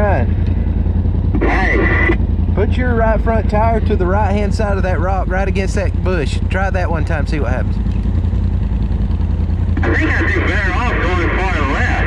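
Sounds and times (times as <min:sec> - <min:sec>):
utv engine idling: 0:00.0 - 0:12.0
person speaking: 0:01.4 - 0:07.8.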